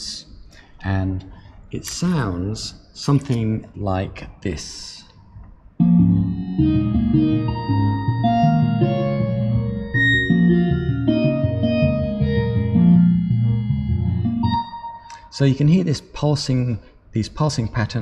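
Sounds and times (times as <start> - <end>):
synthesized notes pulsing: 5.8 - 15.6.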